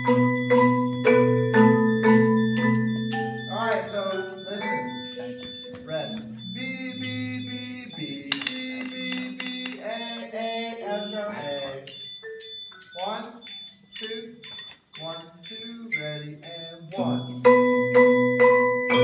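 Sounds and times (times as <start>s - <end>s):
marimbas playing held notes: 0.0s - 10.3s, 11.0s - 19.0s.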